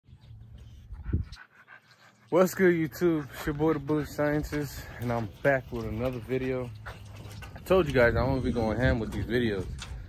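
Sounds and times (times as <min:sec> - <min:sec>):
dog panting: 0:00.1 - 0:07.9.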